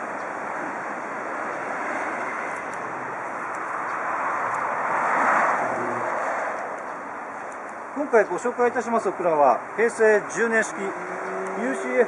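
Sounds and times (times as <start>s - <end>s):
vehicle passing on road: 0.0s - 12.0s.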